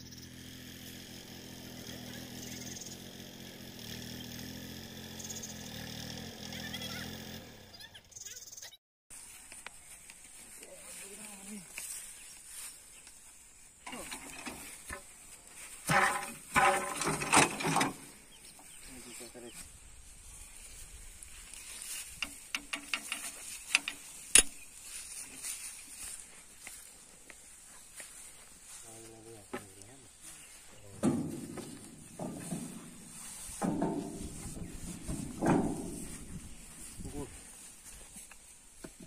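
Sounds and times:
metal clinks and knocks: 0:22.1 - 0:24.6.

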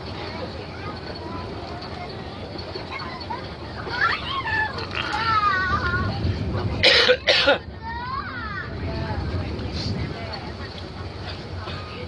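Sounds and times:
indistinct passenger voices: 0:00.0 - 0:12.0
train running rumble: 0:00.0 - 0:12.0.

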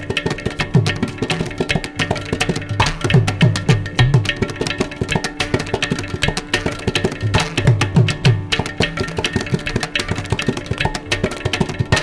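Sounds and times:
ghatam strokes: 0:00.0 - 0:12.0
mridangam strokes: 0:00.0 - 0:12.0.

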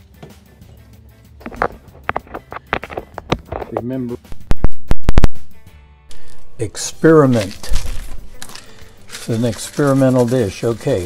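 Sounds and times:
soft background music: 0:00.0 - 0:04.5, 0:05.4 - 0:11.0
container clicking and knocking: 0:01.5 - 0:05.4.

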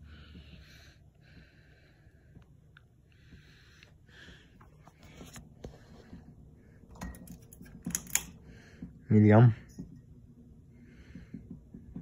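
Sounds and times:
ceiling fan humming: 0:00.0 - 0:12.0.

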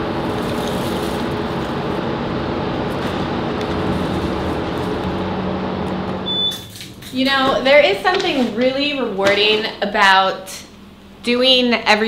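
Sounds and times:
machinery humming: 0:00.0 - 0:11.6
short high beep: 0:06.2 - 0:06.8.

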